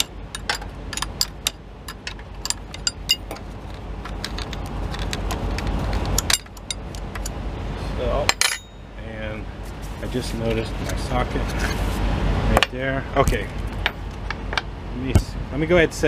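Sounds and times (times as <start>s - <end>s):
steady low rumble: 0.0s - 16.0s.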